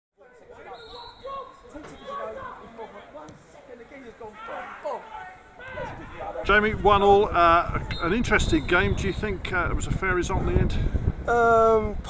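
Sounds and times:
voices talking and calling out: 0.2 - 12.0.

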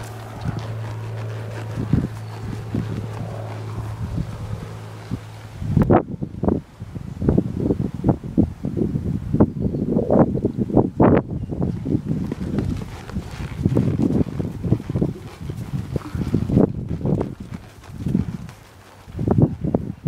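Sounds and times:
horse hooves on sand: 0.0 - 6.4, 11.6 - 20.0
steady low hum: 0.0 - 20.0
wind buffeting microphone: 0.0 - 20.0.

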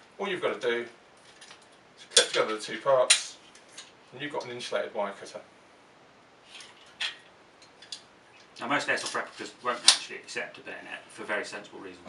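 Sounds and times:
soft rustle: 6.3 - 9.9.

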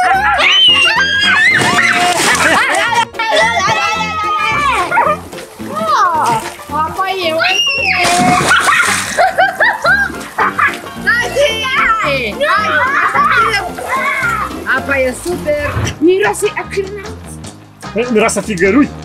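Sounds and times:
children shrieking: 0.0 - 6.4, 7.3 - 14.5
water splashing: 0.0 - 17.2
background music with beat: 3.0 - 19.0.

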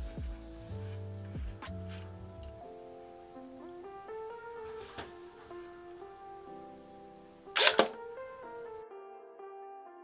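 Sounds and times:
soft music with plucked guitar: 0.0 - 8.9
camera shutter clatter: 7.6 - 8.0.

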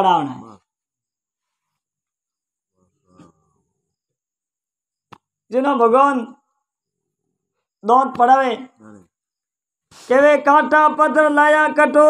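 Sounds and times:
man's voice on a drawn-out vowel: 10.1 - 12.0.

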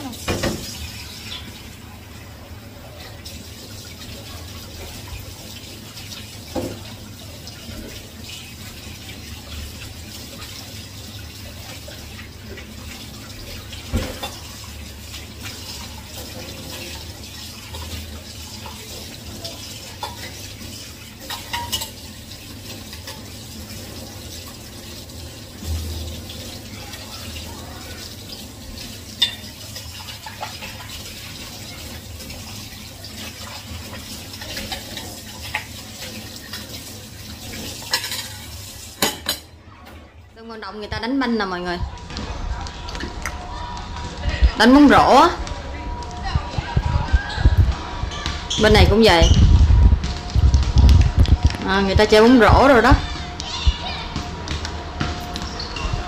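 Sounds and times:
tap running into sink: 0.2 - 1.4, 6.5 - 7.0, 13.4 - 14.6
dishes knocking and clinking: 13.9 - 14.5, 21.2 - 22.0, 39.0 - 39.5.

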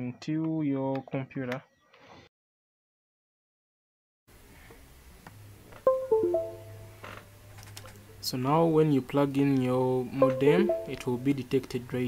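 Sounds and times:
computer chime: 5.9 - 7.0, 10.2 - 11.4.

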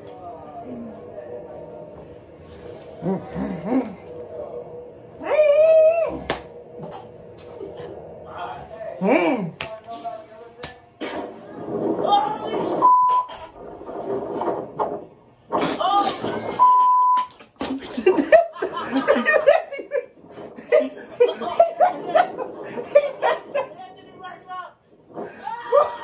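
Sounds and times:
high censor beep: 12.8 - 13.3, 16.6 - 17.3.

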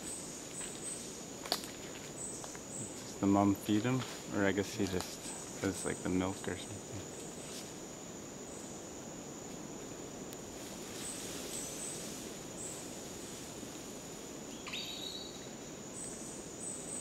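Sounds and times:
insects droning: 0.0 - 17.0
steady background hiss: 0.0 - 17.0.

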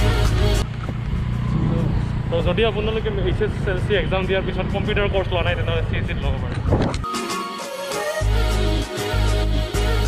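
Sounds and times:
motorbike running with road noise: 0.0 - 7.0
background music: 0.0 - 10.0.

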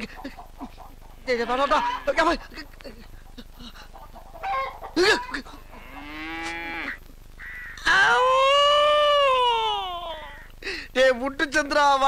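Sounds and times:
man wailing in comic crying: 5.0 - 5.6, 7.8 - 10.5.

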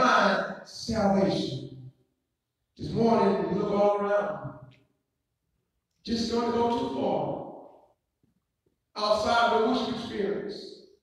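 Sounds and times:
man speaking through microphone: 0.0 - 1.8, 2.8 - 4.5, 6.0 - 7.6, 9.0 - 10.7.

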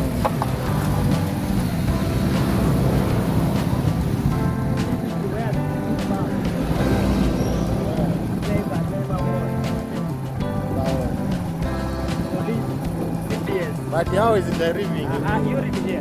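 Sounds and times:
song with beat and bass: 0.0 - 16.0.

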